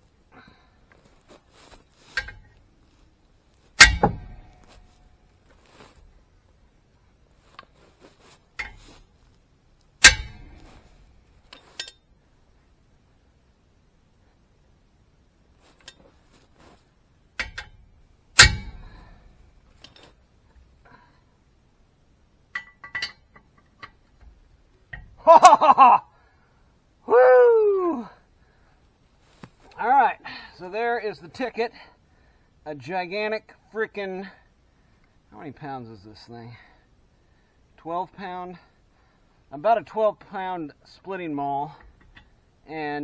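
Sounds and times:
maul striking wrench: 2.2 - 2.5, 3.8 - 4.9, 10.0 - 12.0, 17.4 - 20.1, 22.6 - 24.0
loud metallic clang: 3.8 - 4.9, 10.0 - 10.9, 17.4 - 19.4
wrench clinking on lug nut: 11.5 - 12.0, 17.4 - 17.8, 22.5 - 24.0.

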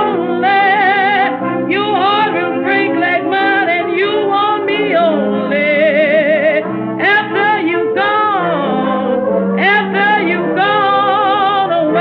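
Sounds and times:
old jazz band recording: 0.0 - 12.0.

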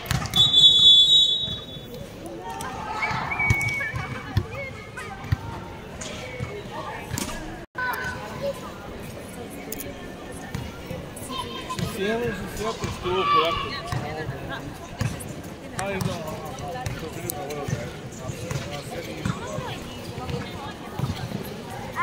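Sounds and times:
voices calling out: 0.0 - 8.4.

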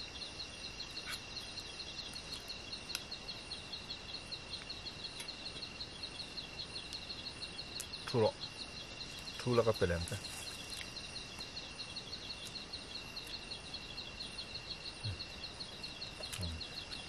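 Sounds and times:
crickets chirping: 0.0 - 17.0
high-pitched insect hum: 0.0 - 17.0.

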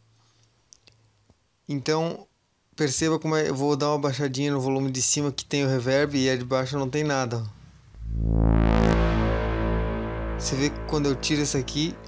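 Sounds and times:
sustained synthesizer note with reverb: 7.9 - 12.0.

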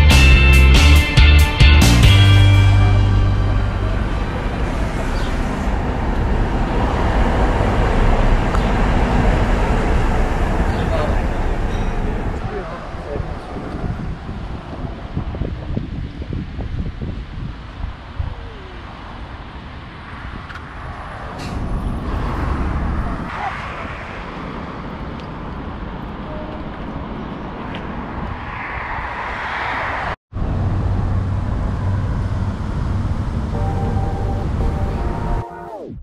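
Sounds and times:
road traffic passing: 0.0 - 36.0
wind buffeting microphone: 4.0 - 34.7.

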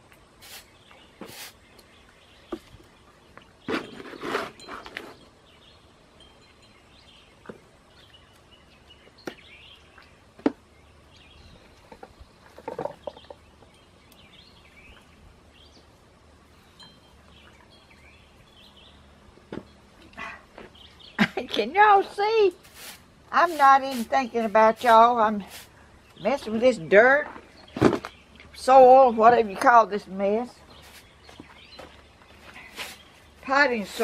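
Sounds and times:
trowel working potting soil: 0.4 - 1.8, 3.6 - 5.3, 21.6 - 27.4, 30.4 - 34.0
scraping rustle: 3.6 - 5.3, 22.5 - 25.8, 30.6 - 34.0.

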